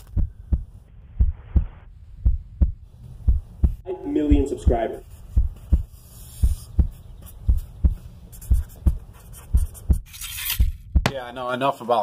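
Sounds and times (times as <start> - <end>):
low hum: 0.0 - 11.1
heartbeat thumps: 0.0 - 11.2.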